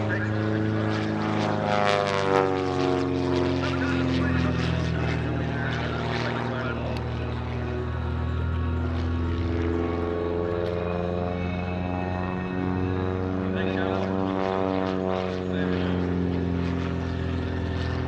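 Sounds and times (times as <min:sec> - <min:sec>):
propeller plane engine: 0:00.0 - 0:18.0.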